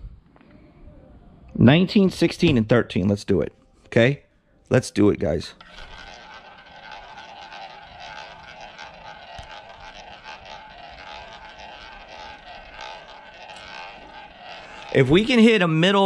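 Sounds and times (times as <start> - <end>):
roulette ball rolling on wheel: 5.6 - 16.0.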